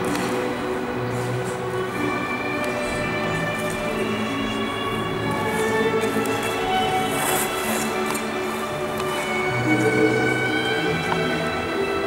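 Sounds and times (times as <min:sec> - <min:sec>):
music with long held notes: 0:00.0 - 0:12.0.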